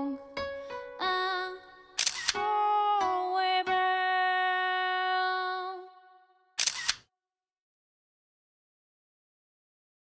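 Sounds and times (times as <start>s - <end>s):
background music: 0.0s - 6.3s
camera shutter click: 2.0s - 2.4s, 6.6s - 7.1s.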